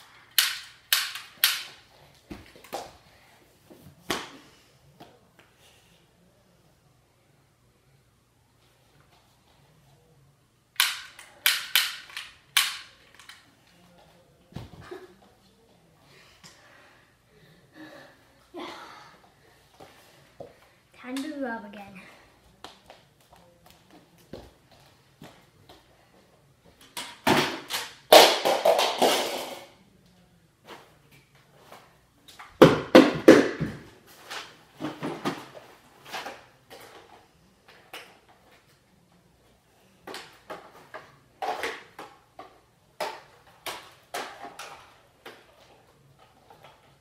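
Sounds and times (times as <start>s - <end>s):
plastic toys clattering: 0.3s - 1.8s.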